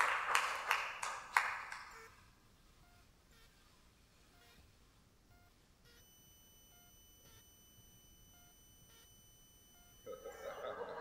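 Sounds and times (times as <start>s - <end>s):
faint high electronic tone: 2.0s - 11.0s.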